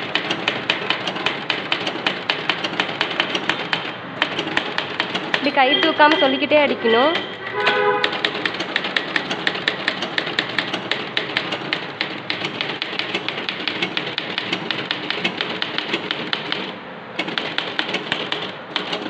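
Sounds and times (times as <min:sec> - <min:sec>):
manual typewriter typing fast: 0:00.0 - 0:19.0.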